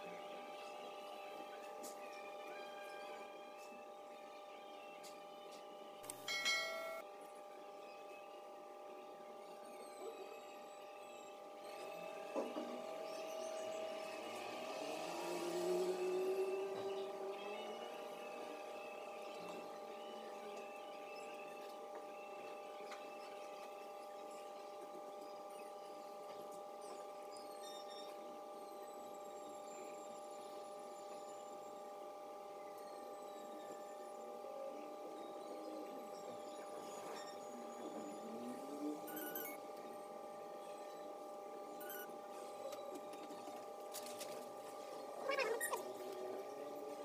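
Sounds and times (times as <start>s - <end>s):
faint electrical hum: 0.0s - 47.0s
rising tone: 11.7s - 19.4s.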